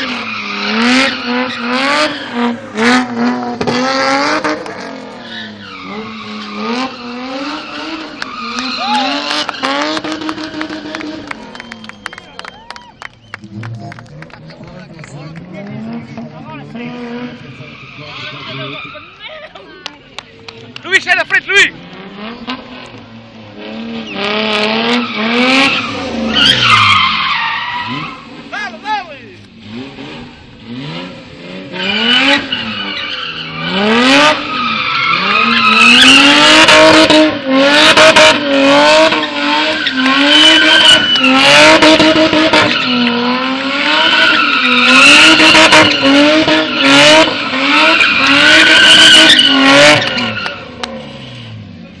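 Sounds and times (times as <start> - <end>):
car engine revving: 0.0 - 19.2, 19.8 - 52.0
tyres squealing: 4.9 - 10.8, 24.9 - 29.4, 31.7 - 36.4, 39.1 - 51.4.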